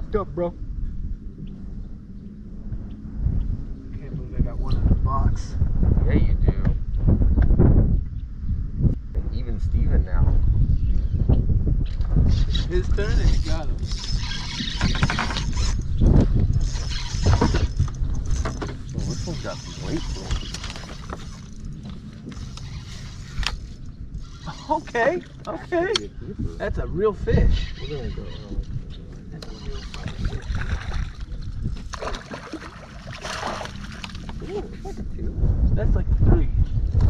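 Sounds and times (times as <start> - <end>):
wind rumble on microphone: 0.0 - 37.0
water moving around boat: 13.7 - 26.6, 27.6 - 35.2.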